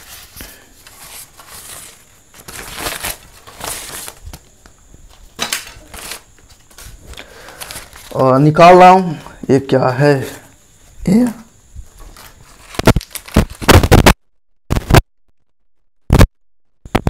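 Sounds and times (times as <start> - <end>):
plastic wrapping crinkling: 0.0 - 4.5, 5.8 - 8.3, 11.9 - 14.2.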